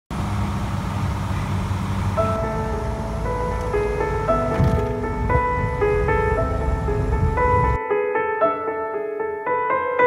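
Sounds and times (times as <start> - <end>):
propeller aircraft engine drone: 0.1 - 7.8
background music with held notes: 2.1 - 10.0.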